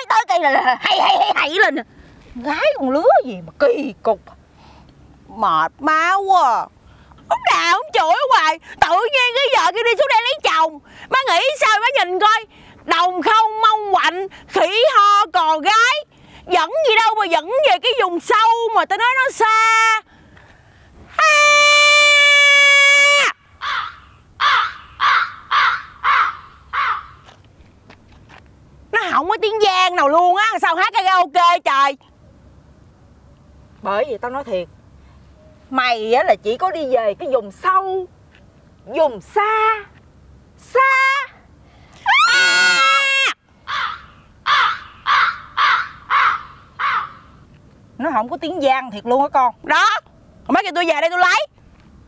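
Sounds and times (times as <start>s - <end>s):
crow cawing: 23.6s - 27.3s, 43.6s - 47.4s.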